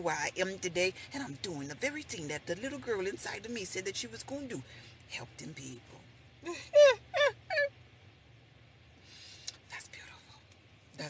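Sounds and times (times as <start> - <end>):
woman laughing: 6.4 - 7.7.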